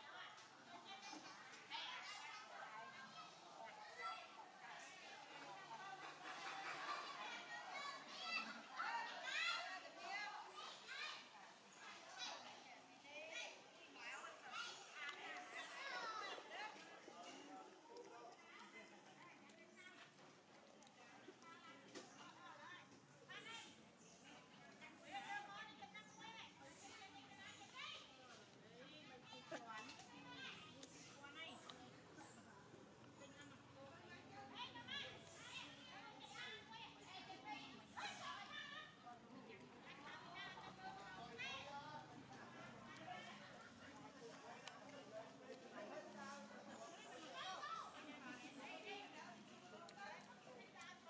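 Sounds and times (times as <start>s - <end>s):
faint high-pitched voices chattering: 0.0s - 51.0s.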